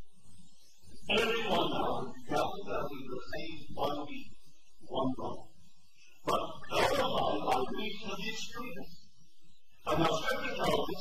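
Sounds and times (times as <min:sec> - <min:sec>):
recording noise: 0:00.0 - 0:11.0
man's voice: 0:01.0 - 0:05.5, 0:06.2 - 0:08.9, 0:09.8 - 0:11.0.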